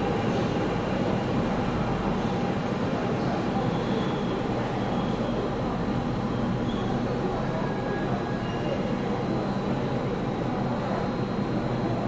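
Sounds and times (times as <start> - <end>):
subway train rumbling: 0.0 - 12.0.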